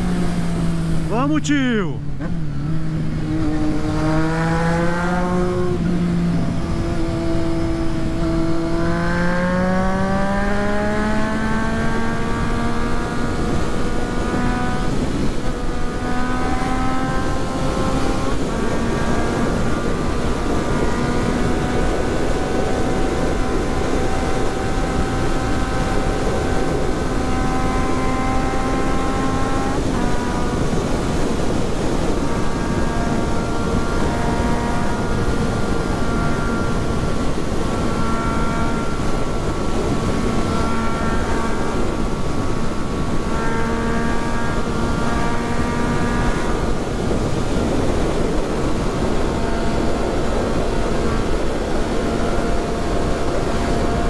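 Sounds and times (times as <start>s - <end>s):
motorcycle engine at speed: 0.0s - 1.1s, 2.0s - 54.0s
heavy wind noise: 29.7s - 54.0s.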